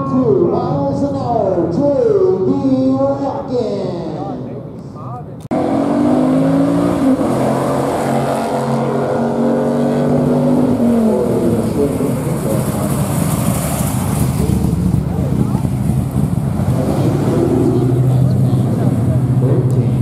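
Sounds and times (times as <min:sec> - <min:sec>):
rough engine rumble: 0:04.6 - 0:20.0
race car engine running loud: 0:05.5 - 0:20.0.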